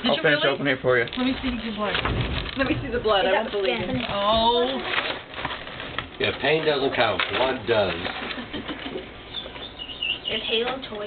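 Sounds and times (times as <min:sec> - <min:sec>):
gift packaging rustling: 0:00.0 - 0:09.8.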